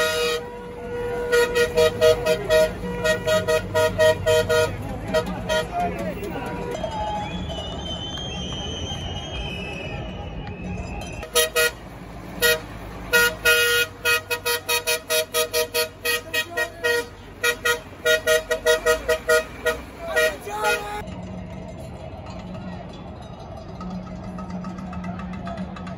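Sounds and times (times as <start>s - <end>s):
vehicle horn honking: 0.0s - 8.5s, 11.2s - 21.0s.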